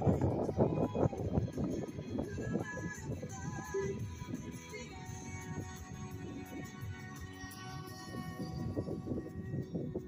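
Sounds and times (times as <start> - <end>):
music through speakers: 0.0 - 10.0.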